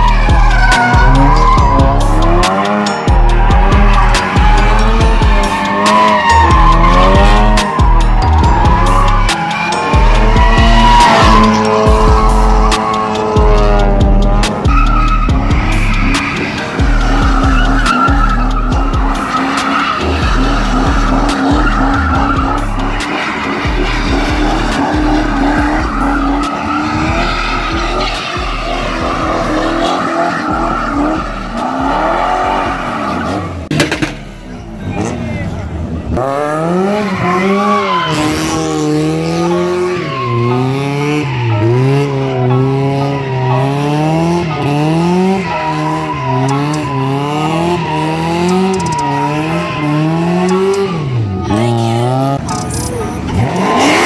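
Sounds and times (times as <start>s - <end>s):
background music bass line: 0.0s - 34.5s, 36.1s - 52.7s
tyres squealing on pavement: 0.0s - 35.7s, 36.6s - 54.0s
car engines revving: 0.0s - 54.0s.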